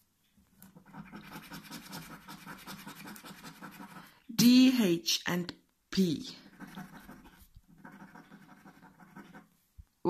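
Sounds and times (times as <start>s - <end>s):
scratchcard being scratched: 0.6s - 4.1s, 6.4s - 9.5s.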